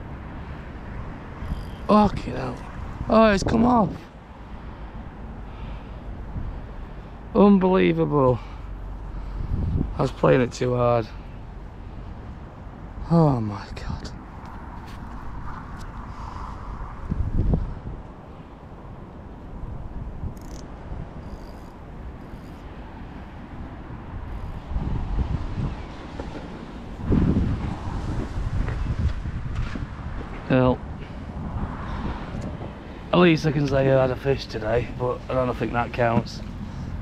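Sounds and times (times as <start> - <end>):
wind buffeting microphone: 0.0 - 4.2, 4.9 - 7.3, 8.7 - 10.6, 13.8 - 37.0.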